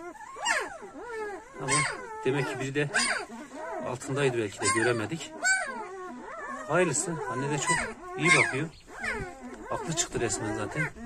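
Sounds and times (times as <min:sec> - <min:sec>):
puppies squealing and whimpering: 0:00.0 - 0:11.0.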